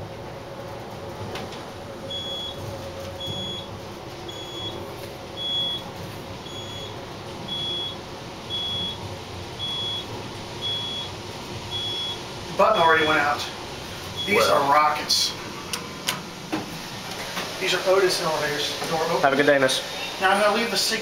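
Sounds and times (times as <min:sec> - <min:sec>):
elevator ride rumble: 0:00.0 - 0:21.0.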